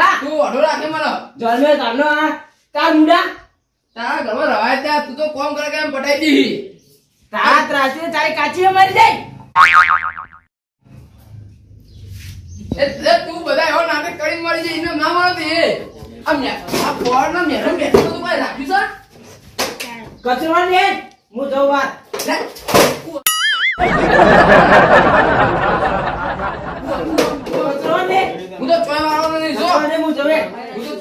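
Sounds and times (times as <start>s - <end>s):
springy comedy sound effect: 9.6s - 10.5s, 23.3s - 24.2s.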